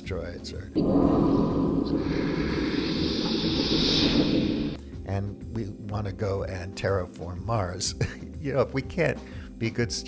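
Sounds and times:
steady rushing noise: 0.8 - 5.0.

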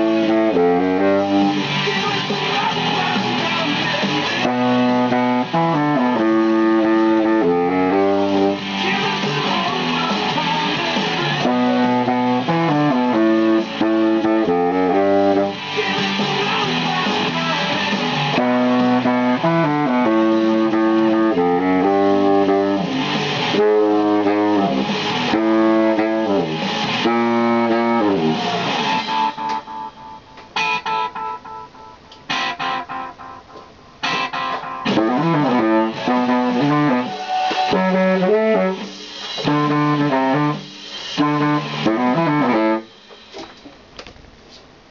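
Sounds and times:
baritone saxophone playing: 0.0 - 1.6, 4.4 - 8.8, 11.4 - 15.5, 18.3 - 28.5, 34.0 - 42.9
rock music with electric guitars: 0.0 - 43.1.

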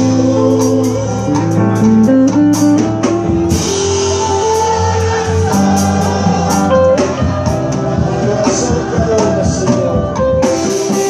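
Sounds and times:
drum and cymbal hits: 0.0 - 11.0
instrumental worship music: 0.0 - 11.0.

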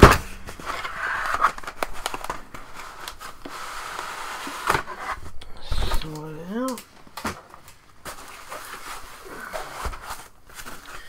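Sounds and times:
foam sheets rustling: 0.0 - 6.2, 7.2 - 11.0.

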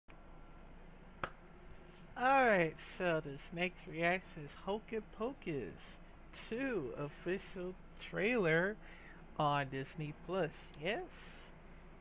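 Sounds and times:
faint steady hum: 0.1 - 12.0.

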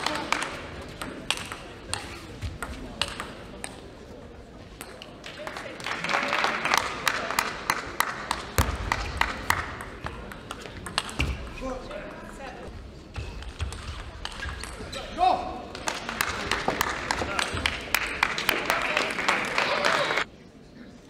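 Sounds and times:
applause and crowd noise: 5.1 - 10.0, 15.6 - 20.3.

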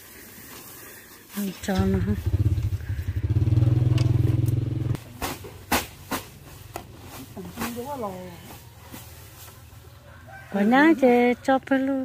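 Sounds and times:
engine droning: 1.6 - 5.2.

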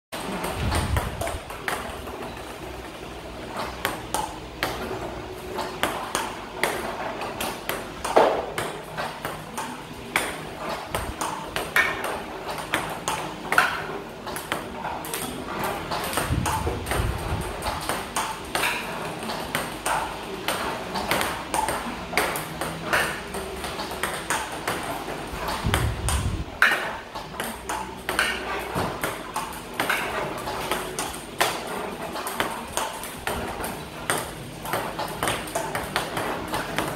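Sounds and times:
table tennis balls clicking: 0.2 - 36.9.

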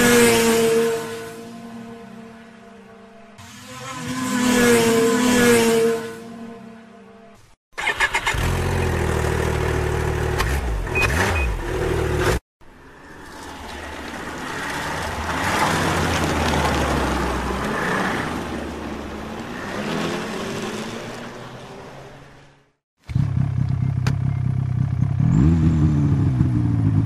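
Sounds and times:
snowmobile passing by: 0.0 - 7.3
snowmobile engine starting: 7.8 - 9.5.

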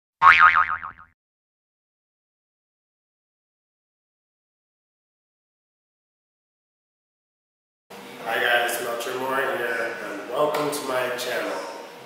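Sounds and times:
cartoon boing: 0.2 - 1.2.

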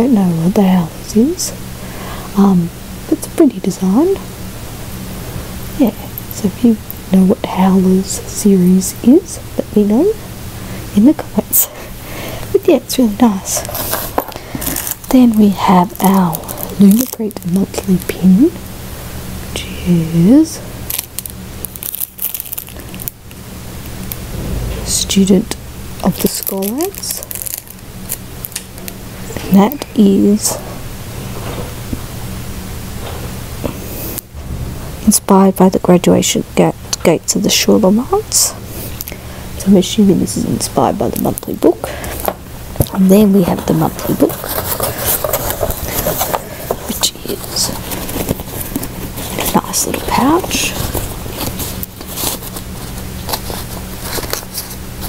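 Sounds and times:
plastic packaging crinkling: 13.6 - 18.1, 20.9 - 23.2, 26.0 - 28.9, 43.5 - 55.0.

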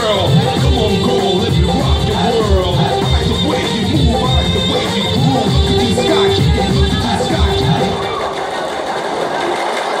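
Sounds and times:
audience voices: 0.0 - 10.0
audience clapping: 2.8 - 10.0.

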